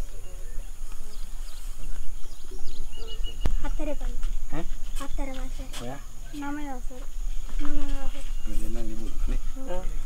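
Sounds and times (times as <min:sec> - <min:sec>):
men talking quietly: 0:00.0 - 0:10.0.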